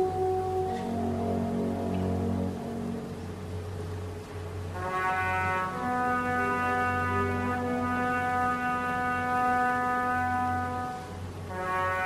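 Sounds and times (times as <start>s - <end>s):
brass section holding chord: 0.0s - 3.6s, 4.6s - 12.0s.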